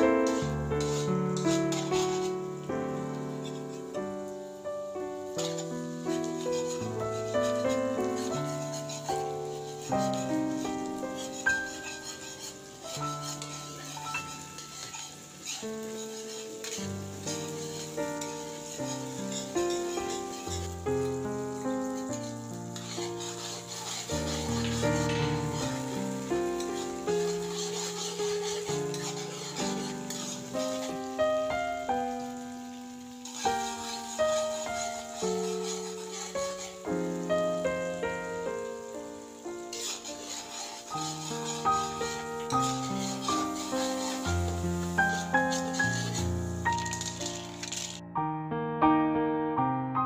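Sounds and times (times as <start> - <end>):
garlic sizzling in oil: 0.0 - 48.0
instrumental background music: 0.0 - 48.1
spatula stirring: 0.2 - 4.0, 5.3 - 48.0.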